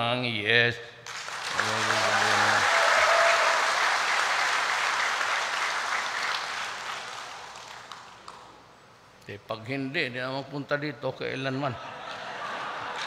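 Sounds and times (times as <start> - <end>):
audience applauding: 1.1 - 8.6.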